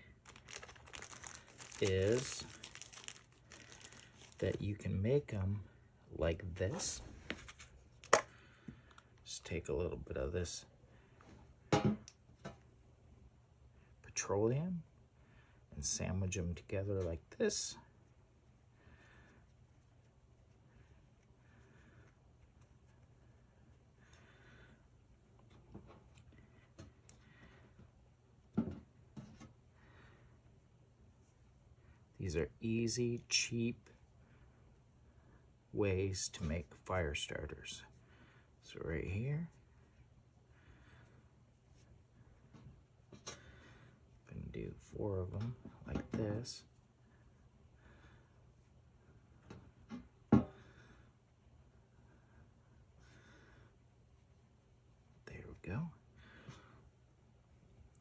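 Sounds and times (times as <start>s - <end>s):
soft rustling: 0.0s - 4.9s, 6.5s - 9.3s
faint steady low hum: 0.0s - 58.0s.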